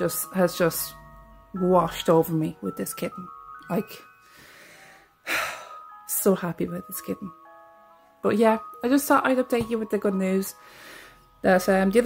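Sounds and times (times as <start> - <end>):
faint music with chime notes: 0.0 - 12.0
woman's sharp breath in: 4.2 - 5.4.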